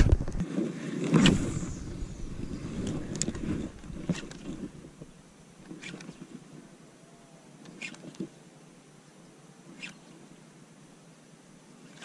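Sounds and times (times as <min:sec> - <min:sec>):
fishing rod cast swish: 0:01.1 - 0:04.7.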